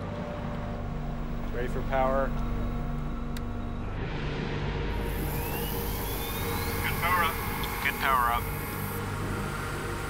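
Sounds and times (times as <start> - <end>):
electrical machinery hum: 4.6 - 10.0
thin whine rising in pitch: 4.9 - 10.0.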